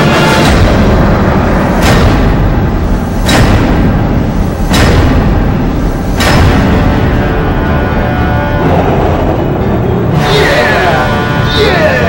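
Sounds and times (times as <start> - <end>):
dramatic soundtrack music: 0.0 - 12.0
booming drum hits: 0.1 - 11.4.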